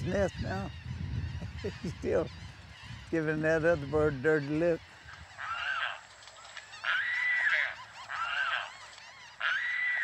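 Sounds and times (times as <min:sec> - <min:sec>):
water birds drawn-out calls: 0:01.6 - 0:10.0.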